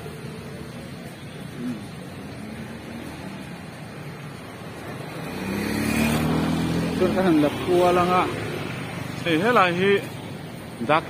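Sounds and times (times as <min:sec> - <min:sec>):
passing vehicles hum: 0:00.0 - 0:11.0
approaching vehicle engine: 0:04.6 - 0:08.9.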